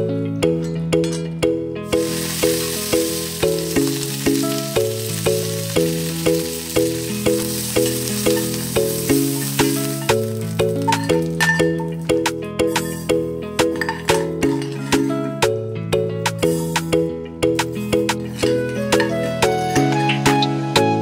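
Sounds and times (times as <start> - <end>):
background music with steady beat: 0.0 - 21.0
leaves sizzling in hot oil: 1.9 - 13.0.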